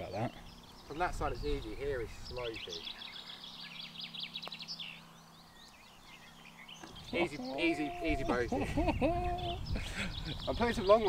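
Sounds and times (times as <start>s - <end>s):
birds chirping and singing: 0.0s - 11.0s.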